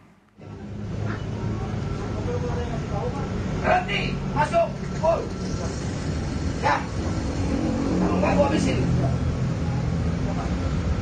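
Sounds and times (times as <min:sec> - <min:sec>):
bus engine drone: 0:00.0 - 0:11.0.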